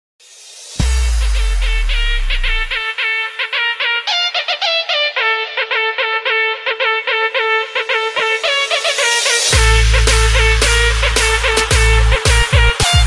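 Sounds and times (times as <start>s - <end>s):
remix music with lead notes: 0.5s - 13.0s
deep bass: 0.8s - 2.8s, 9.6s - 13.0s.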